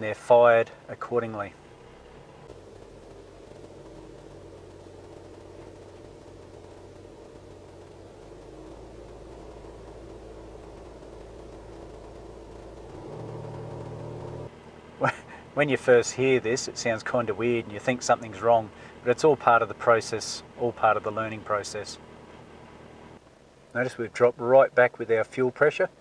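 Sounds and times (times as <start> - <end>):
diesel engine idling: 0.0 - 26.0.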